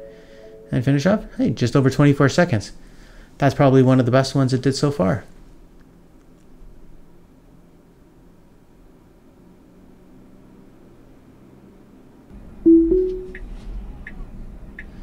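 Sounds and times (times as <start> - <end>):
two-note rising chime: 12.7 - 13.4.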